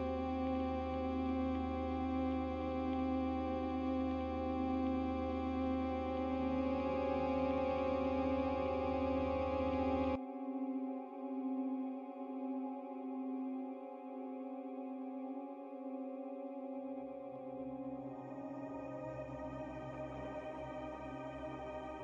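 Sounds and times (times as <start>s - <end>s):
synthesizer pad chords: 0.0s - 22.0s.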